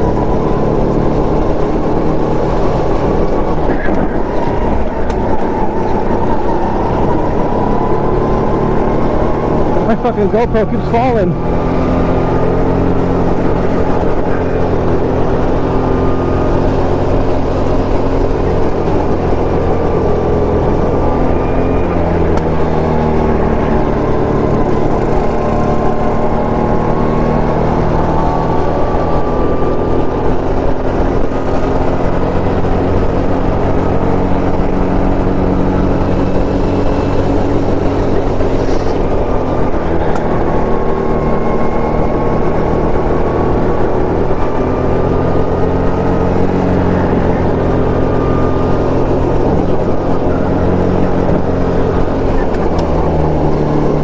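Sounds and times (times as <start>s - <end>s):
go-kart engine running hard: 0.0s - 54.0s.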